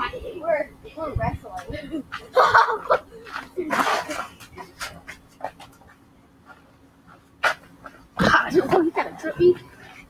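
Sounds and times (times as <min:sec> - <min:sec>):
boys panting: 0:01.7 - 0:10.0.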